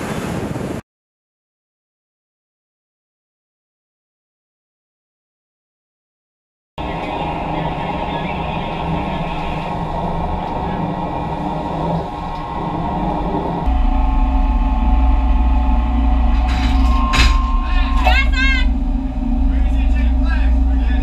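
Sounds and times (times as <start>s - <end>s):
sea: 0.0s - 0.8s, 6.8s - 21.0s
wind: 0.0s - 0.8s, 6.8s - 21.0s
muffled voices: 6.8s - 12.5s, 19.4s - 21.0s
machinery rumble: 6.8s - 21.0s.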